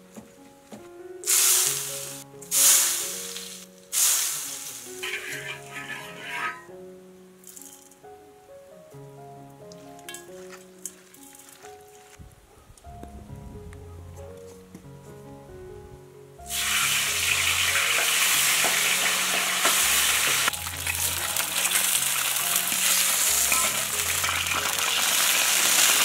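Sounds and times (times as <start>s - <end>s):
soft background music: 0.0s - 26.0s
hot oil sizzling: 1.2s - 6.7s, 16.5s - 26.0s.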